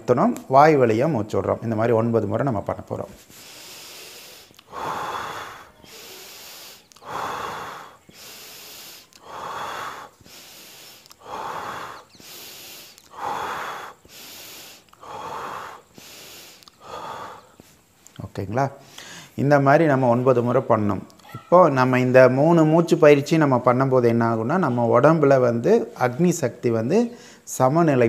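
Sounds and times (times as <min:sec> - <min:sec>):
man breathing deeply: 0:03.2 - 0:18.2, 0:18.8 - 0:19.4, 0:27.1 - 0:27.5.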